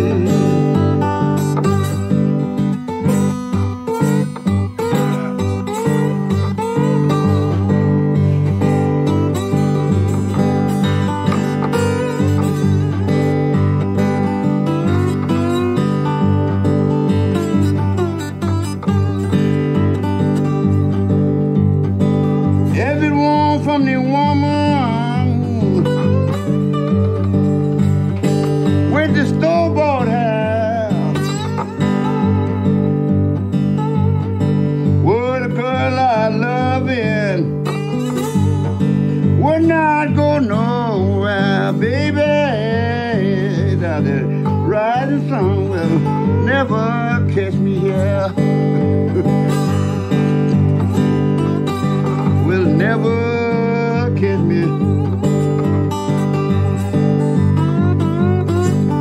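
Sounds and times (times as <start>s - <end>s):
acoustic blues guitar fingerpicking: 0.0s - 59.0s.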